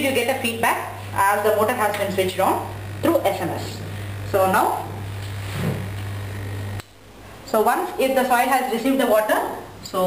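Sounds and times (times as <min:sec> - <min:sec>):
electric motor humming: 0:00.0 - 0:06.9.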